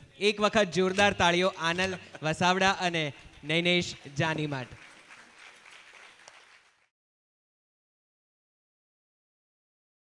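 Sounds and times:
faint audience applause: 3.3s - 6.9s.

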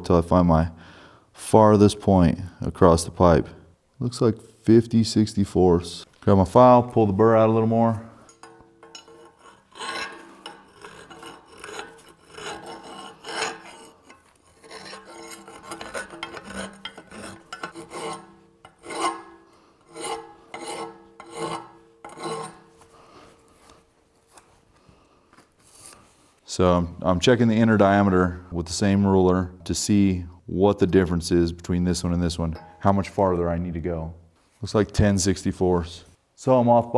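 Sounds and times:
hand file scraping steel pipe: 8.2s - 24.5s.

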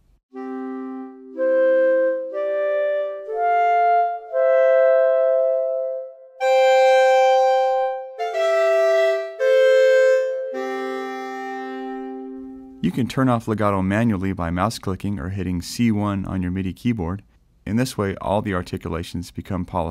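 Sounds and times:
clarinet accented notes: 0.3s - 13.1s.

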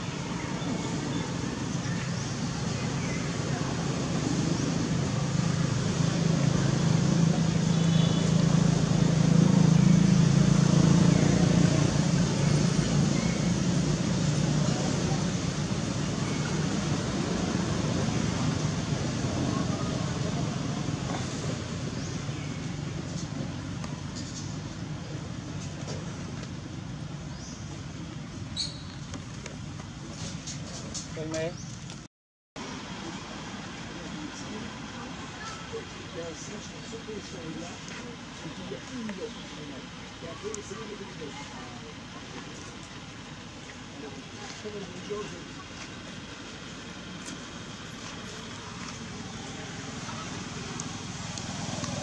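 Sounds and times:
motor vehicle engine drone: 0.0s - 30.9s, 32.6s - 52.0s.

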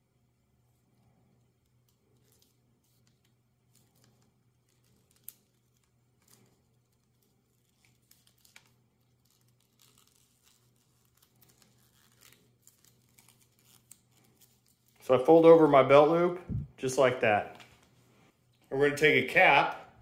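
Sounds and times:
leather belt clicks and rustles: 3.8s - 15.1s.

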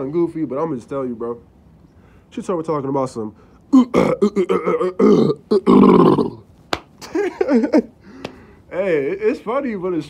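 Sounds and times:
man making throaty vocal sounds: 3.7s - 6.5s.

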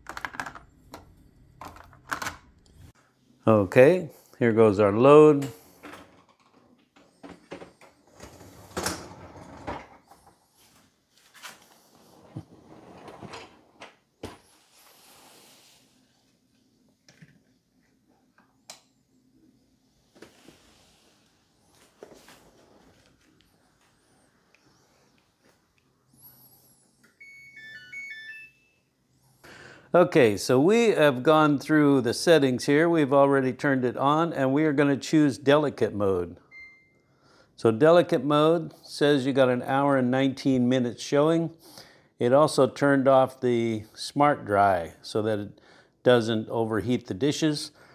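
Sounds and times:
electronic beep melody: 27.2s - 28.8s.

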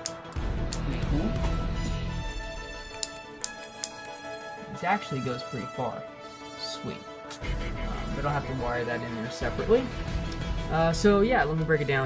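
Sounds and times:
solenoid valve clicking: 0.0s - 0.9s, 2.9s - 4.2s
background music: 0.0s - 12.0s.

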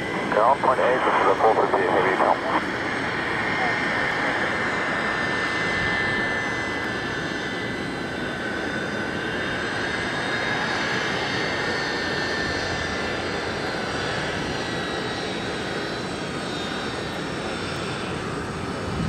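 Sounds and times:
jet engines running: 0.0s - 19.0s.

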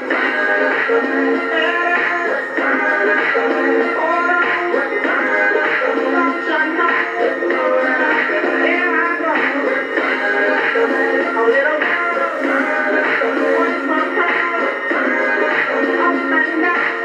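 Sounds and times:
pop song from radio: 0.0s - 17.0s.

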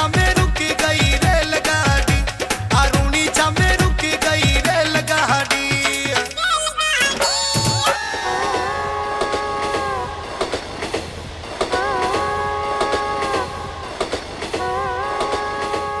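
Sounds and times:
train wheels clickety-clack: 9.2s - 16.0s.

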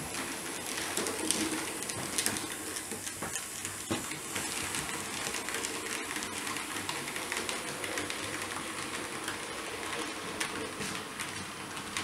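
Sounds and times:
model train wheels clicking on track: 0.0s - 12.0s.

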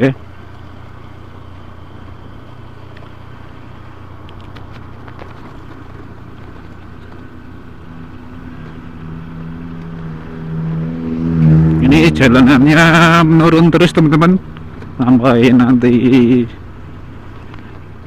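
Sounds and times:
motorcycle riding at low speed: 0.0s - 18.0s
van engine approaching: 0.0s - 18.0s.

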